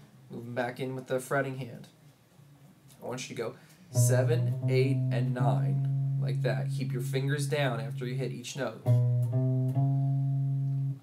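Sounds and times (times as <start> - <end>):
electric guitar single notes: 4.0 - 11.0.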